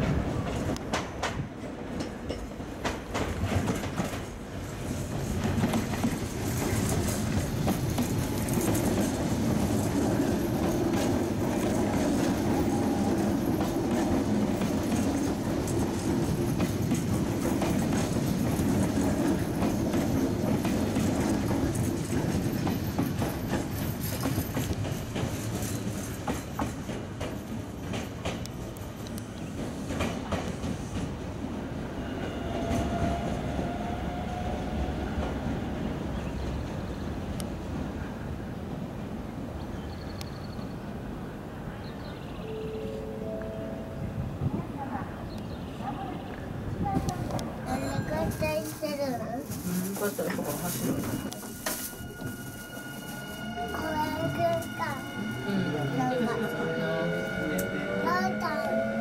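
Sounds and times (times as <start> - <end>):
wheels clacking over rail joints: 0.0 - 31.2
electric train passing: 0.0 - 39.6, 40.4 - 45.7, 46.3 - 59.0.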